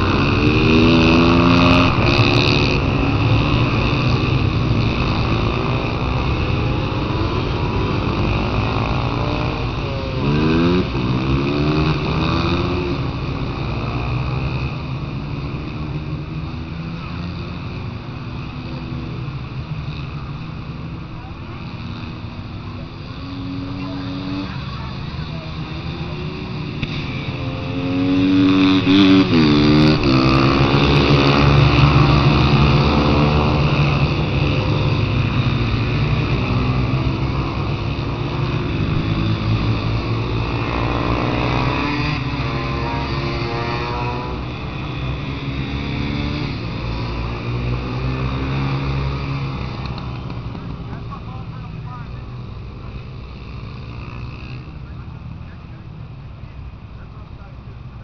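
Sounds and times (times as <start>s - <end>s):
racing motorcycles revving past: 0.0s - 56.0s.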